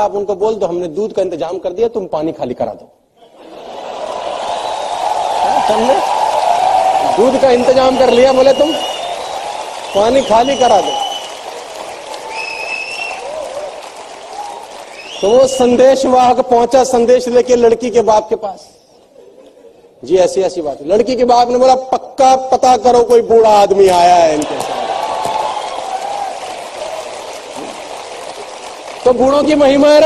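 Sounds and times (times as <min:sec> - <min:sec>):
crowd noise in hall: 0:00.0 - 0:30.0
audience applauding: 0:03.3 - 0:16.0, 0:24.1 - 0:30.0.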